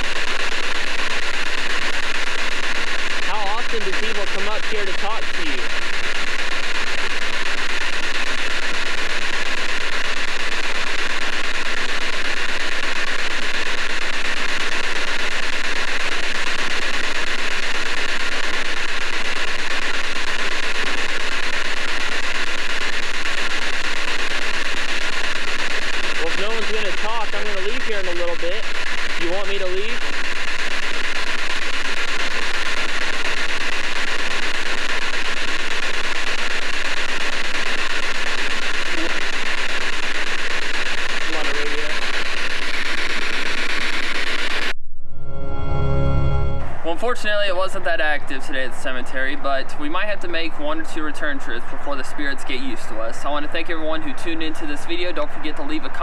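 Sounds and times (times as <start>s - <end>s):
chopped broadcast fragments: 0.0s - 44.7s, 46.6s - 56.0s
radio static hiss: 0.0s - 44.8s, 46.2s - 56.0s.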